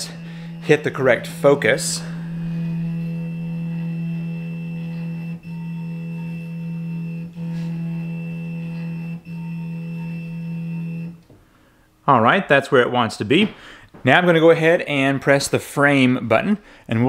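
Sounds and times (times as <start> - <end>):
stepper motor humming: 0.0 - 11.3.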